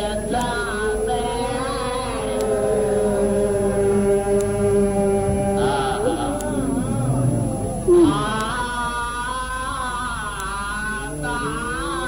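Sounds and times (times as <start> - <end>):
man chanting a mournful lament: 0.0 - 12.0.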